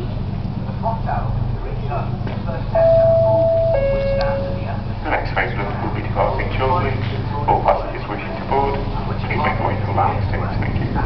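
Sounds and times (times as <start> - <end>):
low hum: 0.0 - 11.0
two-note ding-dong chime: 2.8 - 4.7.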